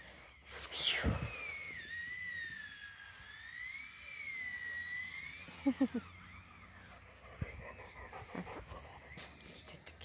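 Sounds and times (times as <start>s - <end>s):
dog panting: 7.2s - 9.2s.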